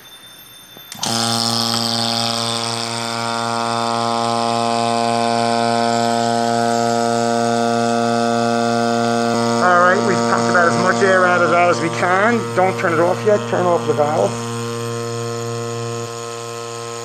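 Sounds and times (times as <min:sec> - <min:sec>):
electric bell ringing: 0:00.0 - 0:16.7
vacuum pump humming: 0:00.7 - 0:17.0.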